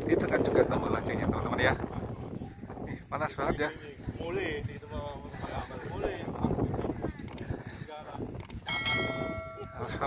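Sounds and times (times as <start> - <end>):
bright bell ding: 8.7 - 10.0.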